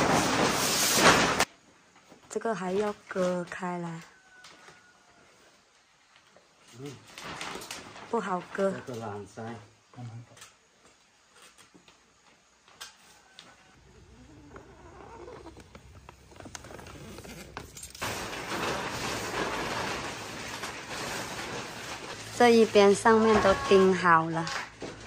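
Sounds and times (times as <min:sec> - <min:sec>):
plastic sheeting rustling and crinkling: 0:00.0 - 0:03.6, 0:04.4 - 0:09.6, 0:14.1 - 0:25.0.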